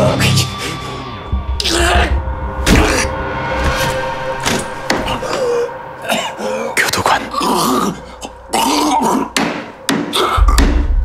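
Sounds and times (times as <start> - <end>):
man coughing and groaning: 5.0 - 9.4.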